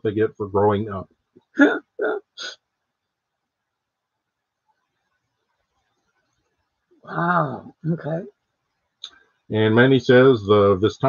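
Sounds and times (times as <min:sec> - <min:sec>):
man laughing: 0:01.6 - 0:02.3.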